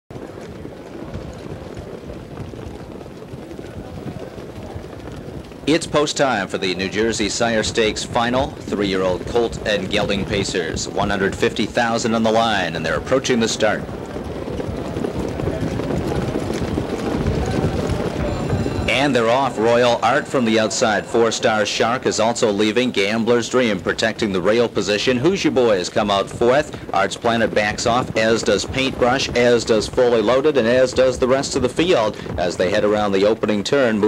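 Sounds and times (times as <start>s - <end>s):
hoofbeats clattering: 0.1s - 34.0s.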